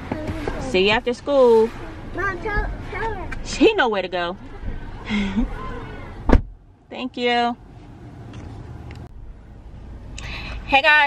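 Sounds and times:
car engine rumble from inside: 0:00.0 - 0:11.0.

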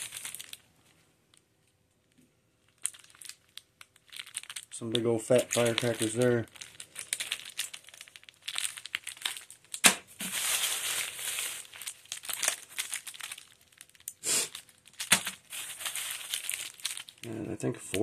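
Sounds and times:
plastic bag rustling: 0:00.0 - 0:00.6, 0:02.7 - 0:17.2
plastic wrapping crinkling: 0:00.0 - 0:18.0.

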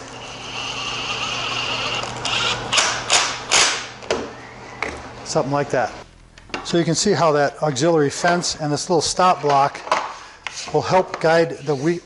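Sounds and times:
impact driver motor whine: 0:00.0 - 0:03.6
impact driver bursts: 0:01.6 - 0:03.9.

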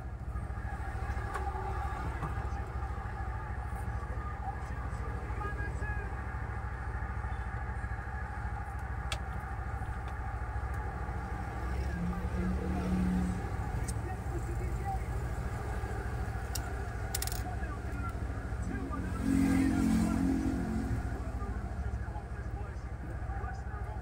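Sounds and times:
vehicle passing: 0:00.0 - 0:23.8
traffic rumble: 0:00.0 - 0:24.0
plastic parts clicking: 0:16.5 - 0:17.5.

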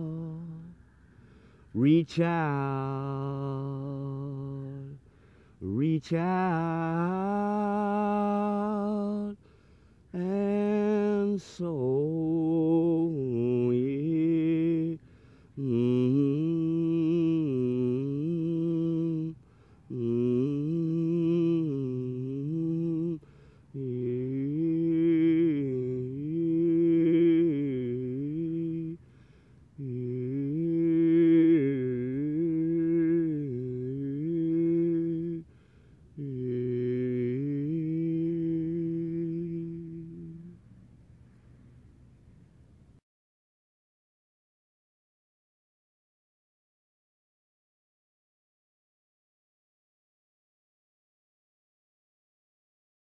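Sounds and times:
man humming a long note: 0:00.0 - 0:00.7, 0:36.2 - 0:40.6
man singing unaccompanied: 0:00.0 - 0:00.9, 0:01.6 - 0:09.5, 0:10.1 - 0:29.1, 0:29.7 - 0:40.6.

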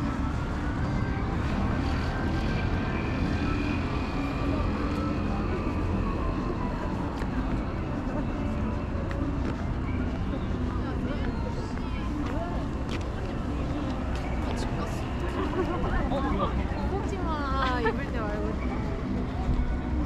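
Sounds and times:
pedestrians' voices: 0:00.0 - 0:20.0
traffic rumble: 0:00.0 - 0:20.0.

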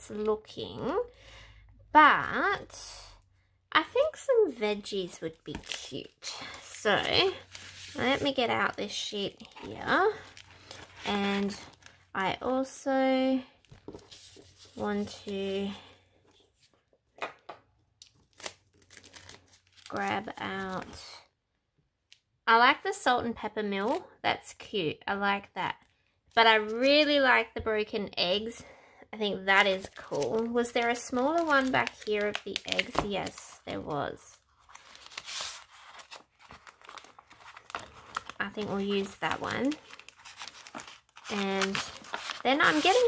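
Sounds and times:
paper sheets rustling: 0:06.9 - 0:08.6, 0:13.7 - 0:15.3, 0:34.6 - 0:43.0
crinkling swish of sticker sheet: 0:41.2 - 0:43.0.

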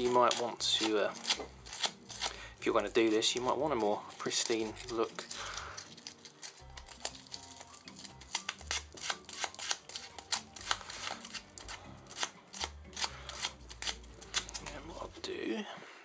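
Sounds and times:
sandpaper rasping: 0:00.0 - 0:15.0.

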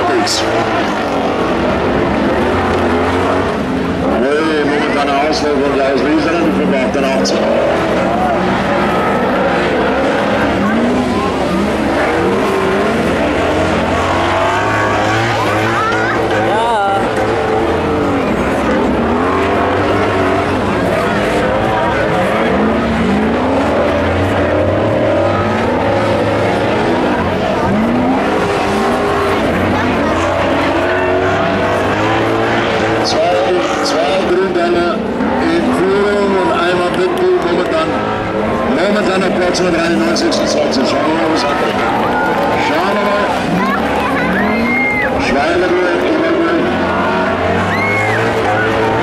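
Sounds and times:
stock car engines revving: 0:00.0 - 0:49.0.

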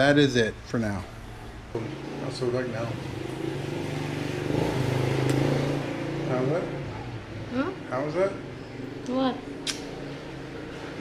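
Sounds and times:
vehicle engine running: 0:01.2 - 0:11.0.

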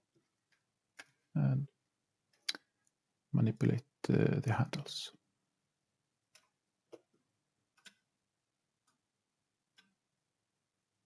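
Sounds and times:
computer mouse clicking: 0:07.7 - 0:08.0.

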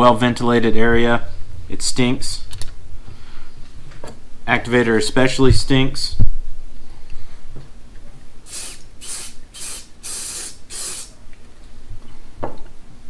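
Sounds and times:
aerosol can spray bursts: 0:08.4 - 0:11.2.

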